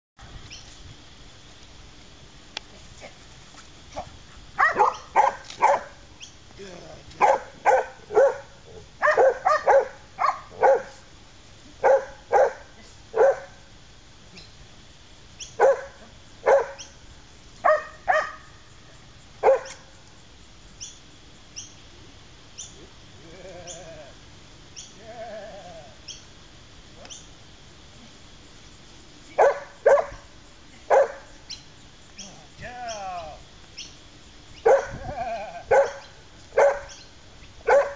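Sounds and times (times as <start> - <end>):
dog barking: 4.6 - 6.0, 7.2 - 11.0, 11.8 - 13.6, 15.6 - 16.9, 17.6 - 18.5, 19.4 - 19.8, 29.4 - 30.3, 30.9 - 31.3, 34.6 - 35.0, 35.7 - 37.0, 37.6 - 37.9.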